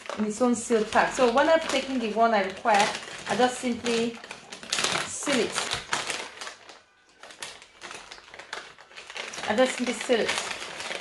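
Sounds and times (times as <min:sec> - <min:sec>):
plastic pouch crinkling: 0:00.0 - 0:11.0.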